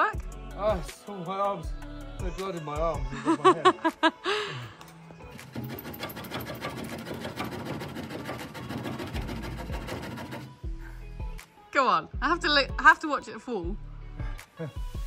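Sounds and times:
background music: 0.0 - 15.0
handsaw cutting wood: 5.3 - 10.6.

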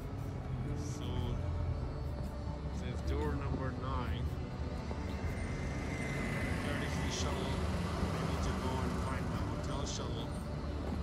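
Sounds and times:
traffic rumble: 0.0 - 11.0.

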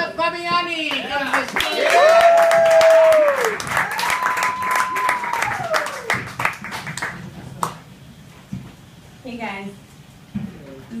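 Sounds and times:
audience applauding: 0.9 - 7.8
whooping cheers: 1.6 - 6.3.

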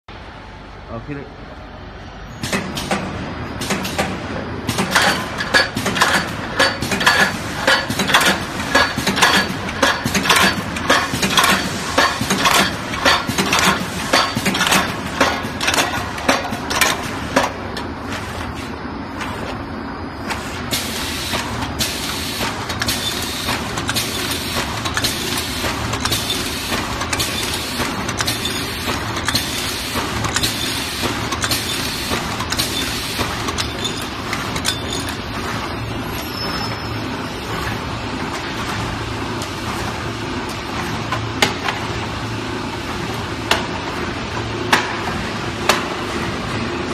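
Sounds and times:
steady machine noise: 3.2 - 46.9
machine strokes clacking: 3.6 - 17.6, 20.8 - 38.8.

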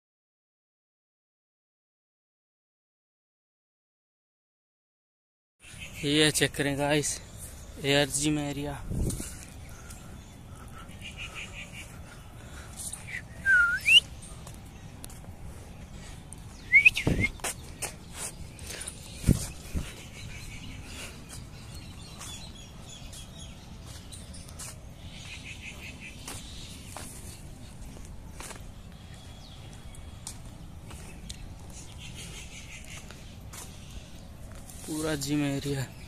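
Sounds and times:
birds chirping and trilling: 5.6 - 36.0.

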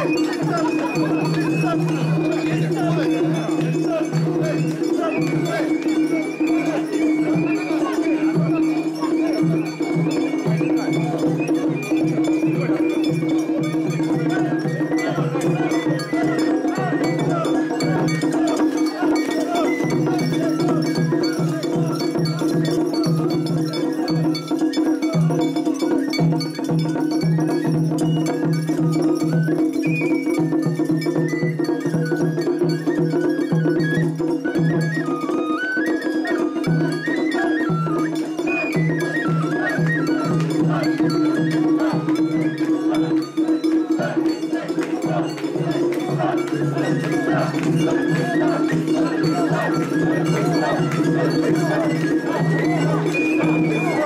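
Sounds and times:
crowd chanting rhythmically: 0.0 - 25.3, 36.6 - 54.0
high flute melody: 0.0 - 54.0.

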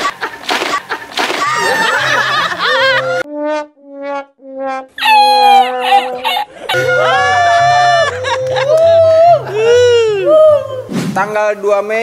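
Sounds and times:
sad trombone sound effect: 3.2 - 4.9.

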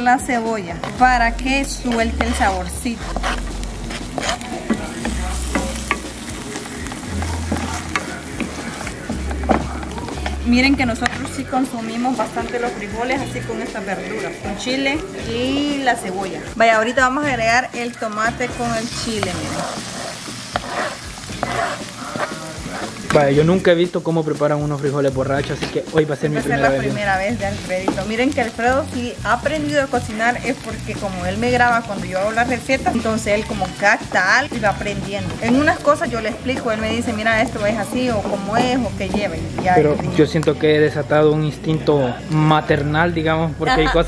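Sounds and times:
onion sizzling in oil: 0.0 - 44.0
spatula scraping a pan: 1.7 - 10.4, 18.5 - 23.5.

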